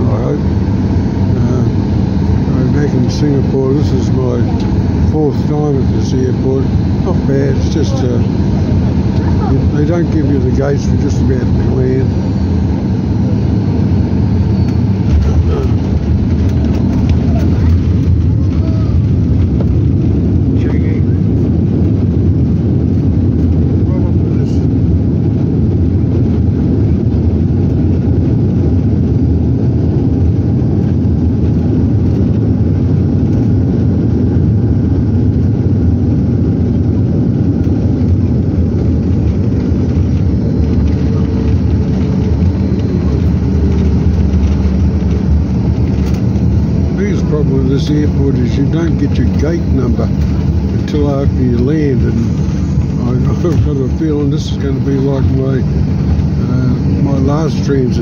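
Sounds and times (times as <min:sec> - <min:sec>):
airliner rolling on runway: 0:00.0 - 0:58.0
steady hum: 0:00.0 - 0:58.0.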